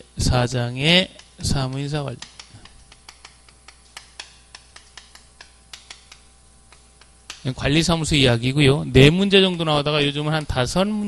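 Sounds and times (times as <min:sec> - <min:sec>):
chalk tapping on blackboard: 0:01.0 - 0:07.8.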